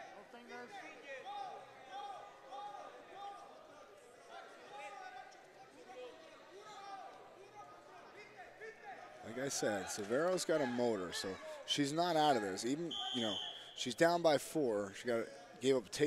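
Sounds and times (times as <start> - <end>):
faint voices in a hall: 0.0 - 16.0.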